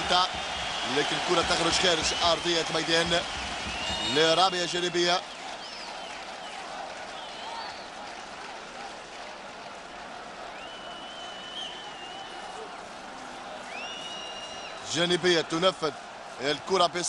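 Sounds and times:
stadium crowd noise: 0.0 - 17.0
long whistles: 10.5 - 12.6, 13.7 - 14.8.

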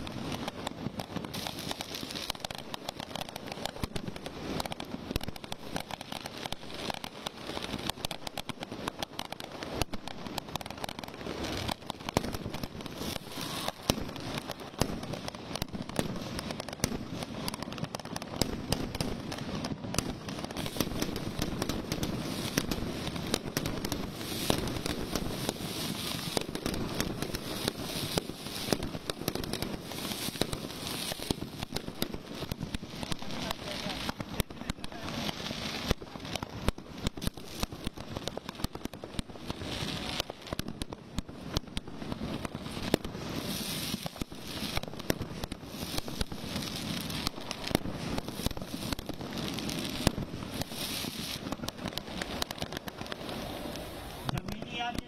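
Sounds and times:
continuous crackling: 0.0 - 55.0
firecrackers banging: 0.0 - 55.0.

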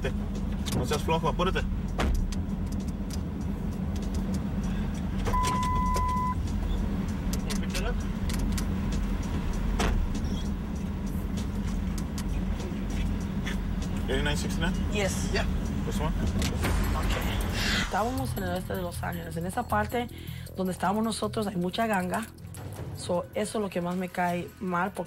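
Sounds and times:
electronic beep: 5.3 - 6.4.

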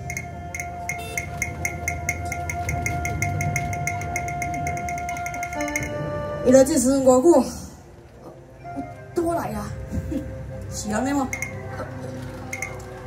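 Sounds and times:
sharp percussion strikes: 0.0 - 6.1
long held instrumental note: 0.0 - 7.0
lower instrumental notes: 0.0 - 13.0.

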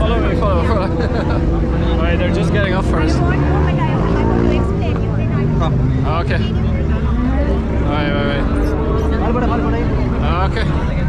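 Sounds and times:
crowd chatter: 0.0 - 11.0
large vehicle engine droning: 0.0 - 11.0.

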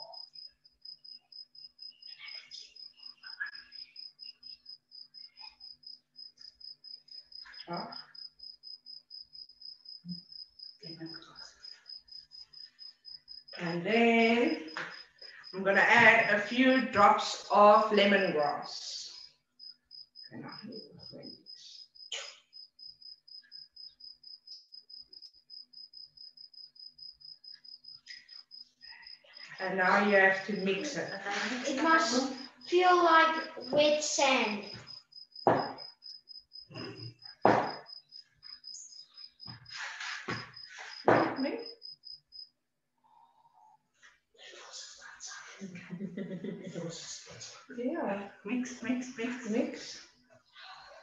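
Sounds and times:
faint high-pitched chirping: 0.0 - 15.6.

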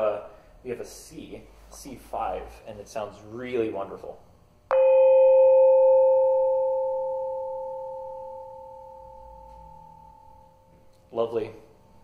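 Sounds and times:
gong ringing: 4.7 - 10.9.

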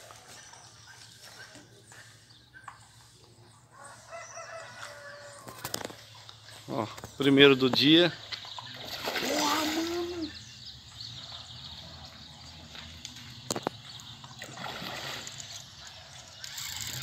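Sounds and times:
fish splashing at water surface: 8.7 - 10.2, 14.3 - 15.7.

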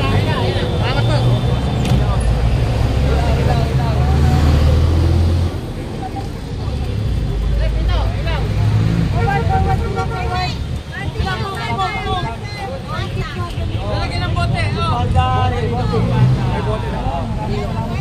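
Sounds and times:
heavy vehicle engine: 0.0 - 10.9
street traffic rumble: 0.0 - 18.0.

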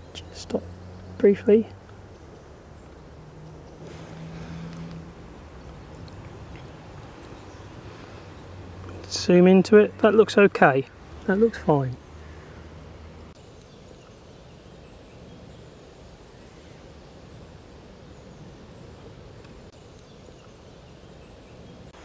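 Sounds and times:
distant bird calls: 0.0 - 22.0
low background hiss: 0.0 - 22.0
low hum: 0.6 - 9.0.

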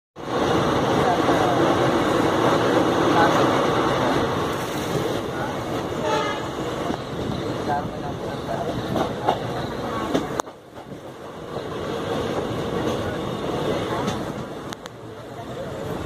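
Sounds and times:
rushing wind: 0.2 - 16.0
train wheels rolling on rails: 0.2 - 16.0.

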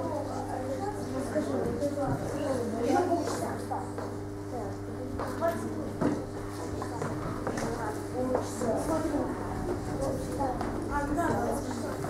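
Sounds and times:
children chattering: 0.0 - 12.0
steady electrical hum: 0.0 - 12.0.

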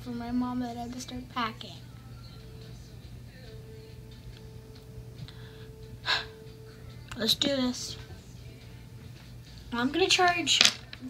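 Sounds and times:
steady low hum: 0.0 - 11.0
girl gasping: 5.4 - 6.4.

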